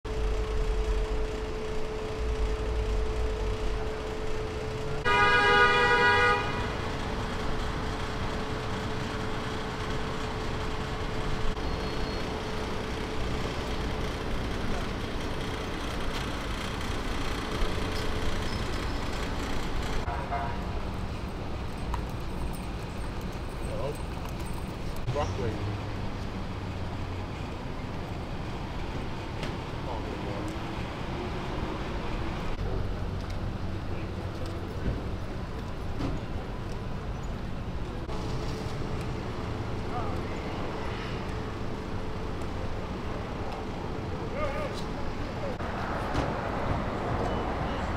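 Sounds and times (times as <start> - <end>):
city street traffic: 0.0 - 47.9
car horn honk: 5.0 - 6.8, 20.1 - 20.7.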